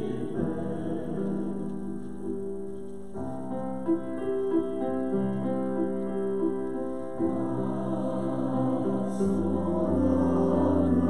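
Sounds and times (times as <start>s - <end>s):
choir singing: 0.0s - 2.4s, 6.9s - 11.0s.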